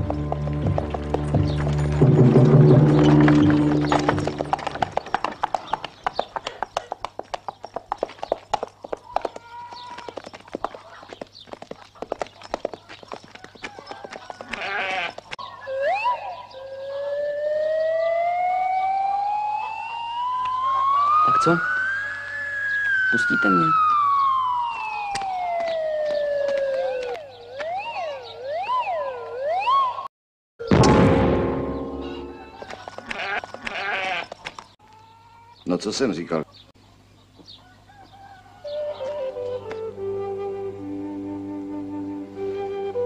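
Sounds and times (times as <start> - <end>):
irregular knocks and clatter: 0.0 - 9.4
sheep bleat: 14.5 - 15.2, 33.0 - 34.3
rising whistle-like glide: 17.3 - 25.8
film music chords: 30.7 - 32.6.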